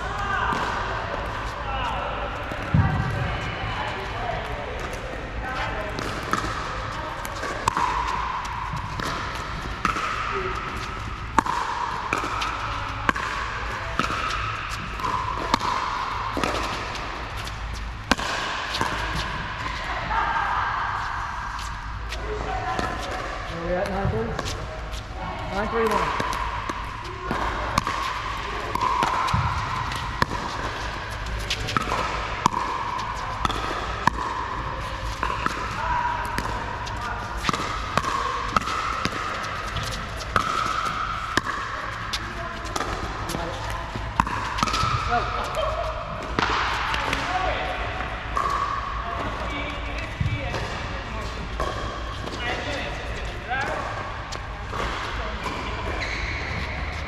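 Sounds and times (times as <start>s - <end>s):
paddles hitting plastic ball: 25.6s - 45.6s.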